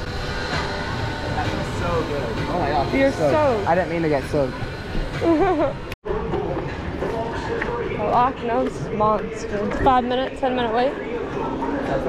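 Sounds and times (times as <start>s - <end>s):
fan blowing air: 0.0s - 6.0s.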